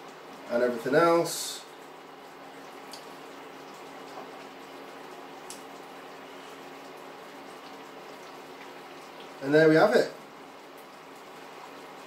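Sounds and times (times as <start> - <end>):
sauce simmering in a frying pan: 0.0 - 12.0.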